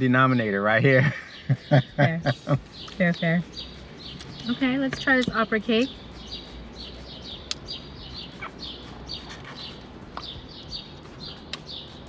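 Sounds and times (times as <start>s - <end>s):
small bird chirping: 0.0s - 12.0s
sharp clicks: 7.4s - 7.7s.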